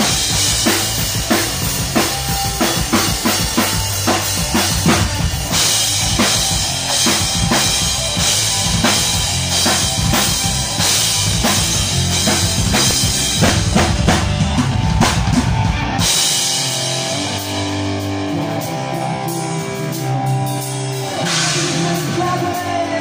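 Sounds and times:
drum kit beat: 0.0 - 23.0
electric guitar chords: 0.0 - 23.0.

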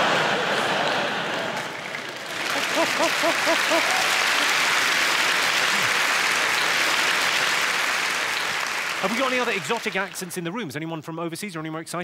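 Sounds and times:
audience laughter: 0.0 - 6.6
audience applauding: 0.0 - 10.5.

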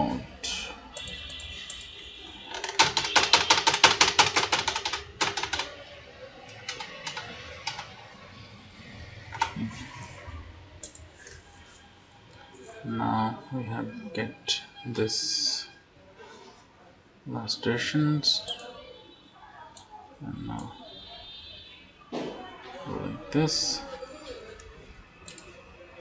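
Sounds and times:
computer keyboard typing: 0.9 - 1.9, 2.5 - 5.8, 6.5 - 8.0, 9.3 - 9.8, 10.8 - 11.4, 25.2 - 25.6.

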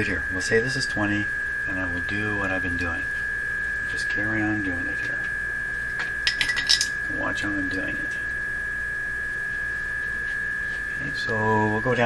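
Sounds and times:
high-pitched tone from radio speaker: 0.0 - 12.0
low mains hum: 0.0 - 12.0
small metallic clinks and clicks: 6.2 - 7.0.

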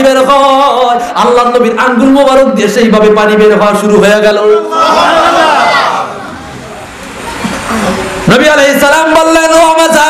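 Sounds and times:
echo of man's voice: 0.0 - 4.8, 8.2 - 10.0
steady background noise: 0.0 - 10.0.

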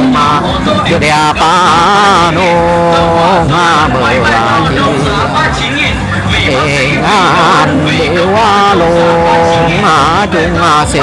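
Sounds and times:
person singing folk song: 0.0 - 11.0.

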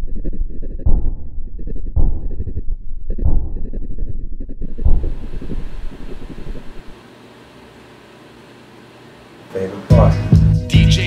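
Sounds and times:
deep booming hits: 0.7 - 7.0.

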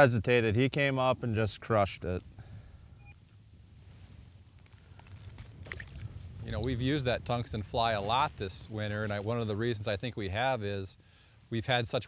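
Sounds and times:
wind rumble on microphone: 2.3 - 10.0.

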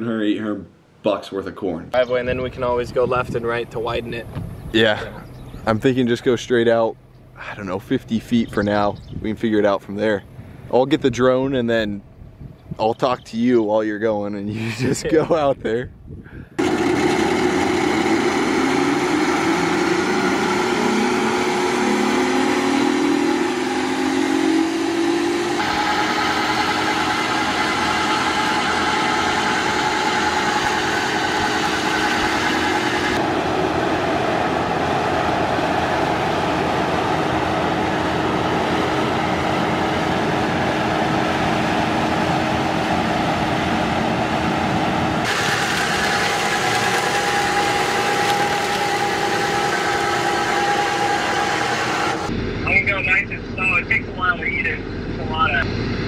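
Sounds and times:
diesel engine running under load: 3.0 - 8.9, 16.5 - 56.0
brush cutter whine and drone: 16.6 - 52.4.

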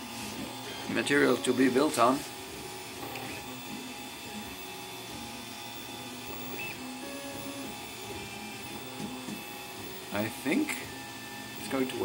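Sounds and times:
stepper motors humming tones: 0.0 - 12.0.

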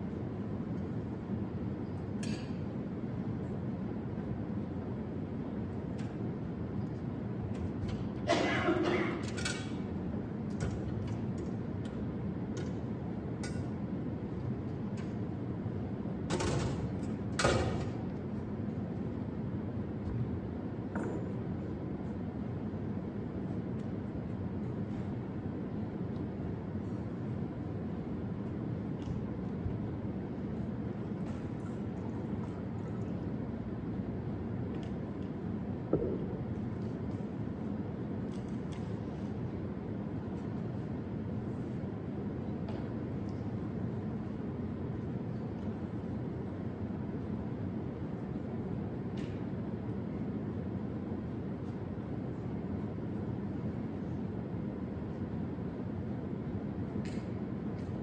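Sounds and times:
low room hum: 0.0 - 58.0.

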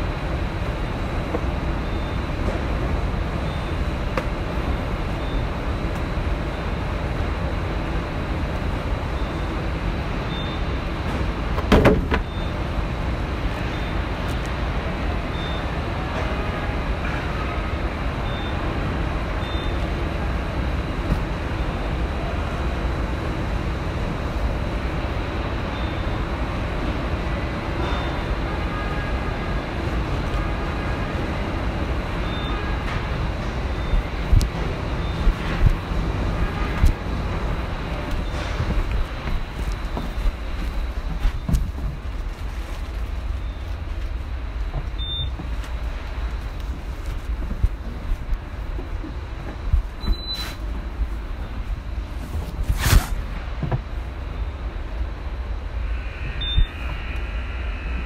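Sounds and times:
factory machinery rumbling: 0.0 - 58.0.

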